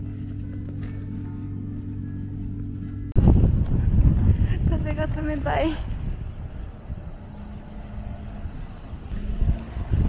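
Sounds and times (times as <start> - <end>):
wind buffeting microphone: 3.1 - 10.0.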